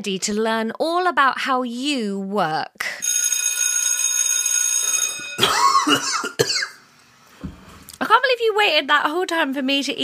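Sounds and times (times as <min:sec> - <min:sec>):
high ringing tone: 0:03.0 - 0:05.9
man coughing and spluttering: 0:05.4 - 0:06.8.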